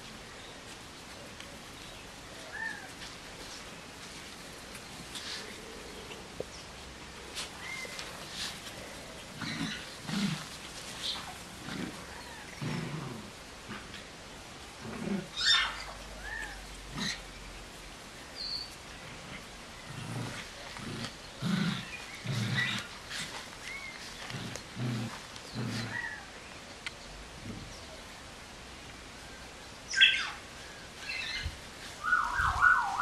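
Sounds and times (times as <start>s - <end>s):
puppies growling: 2.4s - 17.4s, 18.9s - 26.4s.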